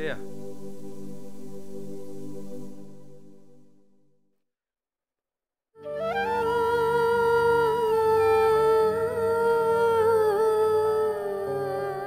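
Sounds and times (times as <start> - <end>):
keyboard notes: 5.8 - 12.0.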